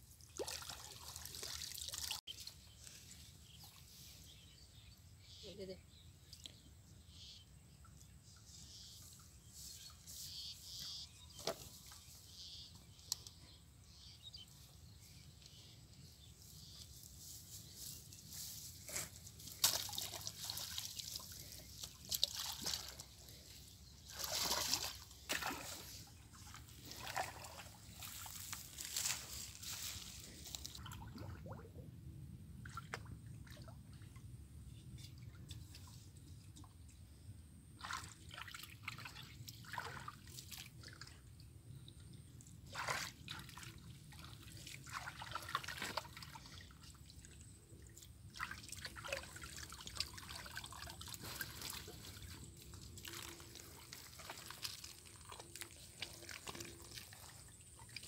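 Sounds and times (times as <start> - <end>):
water sloshing and splashing: 0.0 - 4.2, 17.2 - 31.8, 32.6 - 34.3, 37.8 - 58.0
water dripping and trickling: 0.1 - 3.0, 19.4 - 25.8, 38.3 - 58.0.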